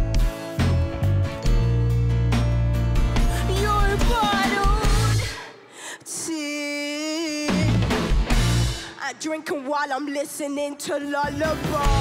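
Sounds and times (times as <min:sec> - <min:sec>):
rock band playing: 0:00.0 - 0:05.3, 0:07.5 - 0:08.8
female lead singer: 0:03.3 - 0:07.9, 0:08.8 - 0:12.0.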